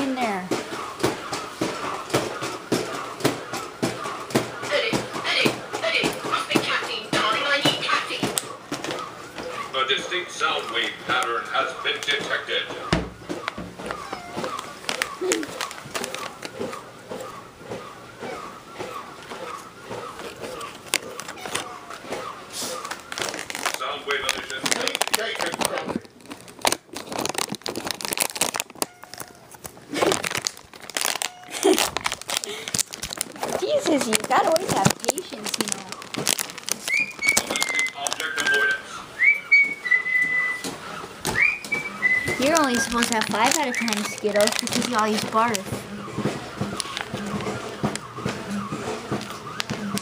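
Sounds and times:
softer lower whistled notes: 0:36.9 - 0:40.7, 0:41.3 - 0:42.9
rising whistled notes: 0:36.9 - 0:42.9.

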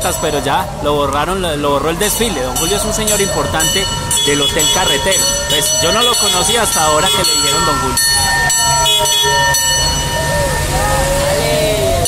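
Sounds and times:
fire engine bell clanging: 0:00.0 - 0:11.2
low engine rumble: 0:00.0 - 0:12.0.

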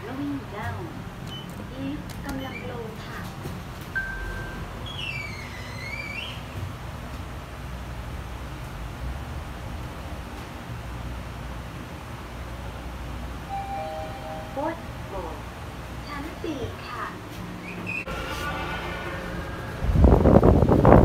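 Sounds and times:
elevator low rumble: 0:00.0 - 0:21.0
short beep: 0:13.5 - 0:14.8
high tone dipping and rising: 0:13.5 - 0:15.2
two steady tones together: 0:13.5 - 0:15.5.

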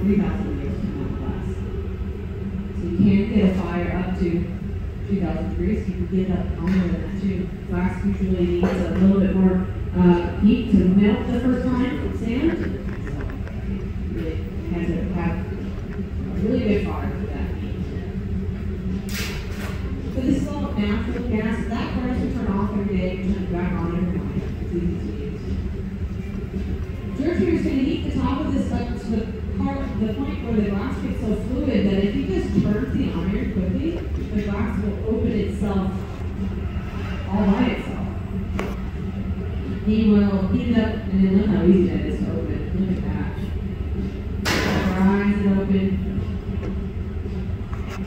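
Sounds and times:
gas furnace rumble: 0:00.0 - 0:48.0.

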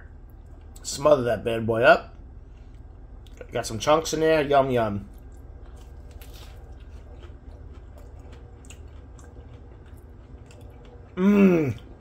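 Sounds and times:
man chewing with mouth clicks: 0:02.5 - 0:03.5, 0:05.1 - 0:12.0.

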